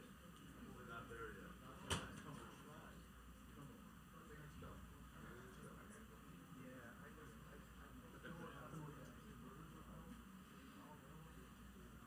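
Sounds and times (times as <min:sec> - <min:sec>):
faint unclear voices: 0:00.0 - 0:12.0.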